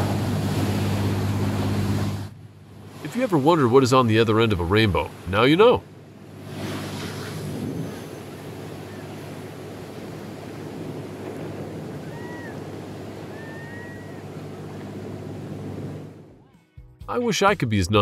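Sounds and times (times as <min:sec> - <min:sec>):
churning seawater and surf: 0:00.0 - 0:16.3.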